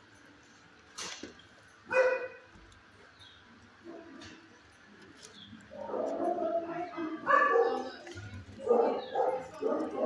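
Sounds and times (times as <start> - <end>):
dog barking: 1.9 - 2.4, 5.8 - 8.0, 8.6 - 10.0.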